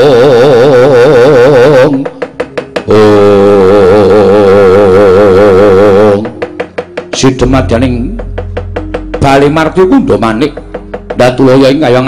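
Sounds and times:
person singing long vibrato note: 0.0 - 2.2, 2.8 - 6.6
rapid sharp wooden knocks: 1.6 - 3.2, 5.4 - 12.0.

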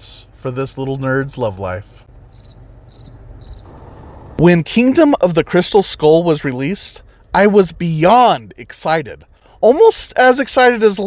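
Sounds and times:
cricket chirping: 2.3 - 3.8.

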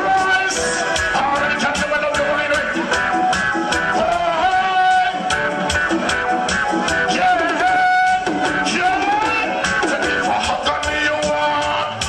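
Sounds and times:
person singing into a microphone: 0.0 - 5.6, 6.9 - 12.0
reggae dancehall music: 0.0 - 12.0.

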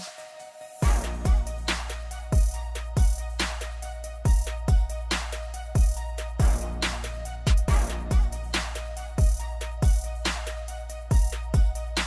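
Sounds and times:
deep kick drums: 0.8 - 1.7, 2.3 - 3.4, 4.3 - 5.1, 5.8 - 6.9, 7.5 - 8.6, 9.2 - 10.2, 11.1 - 12.0
snare-like hit: 0.8 - 2.1, 3.4 - 3.8, 5.1 - 5.5, 6.8 - 7.9, 8.5 - 9.0, 10.2 - 10.6.

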